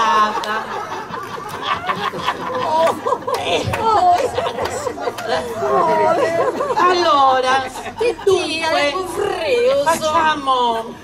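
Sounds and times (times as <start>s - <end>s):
women talking: 0.0s - 1.1s, 2.5s - 11.0s.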